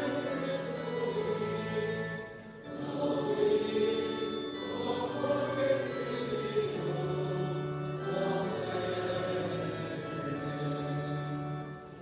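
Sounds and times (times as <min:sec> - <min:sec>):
voices singing a hymn: 0:00.0 - 0:12.0.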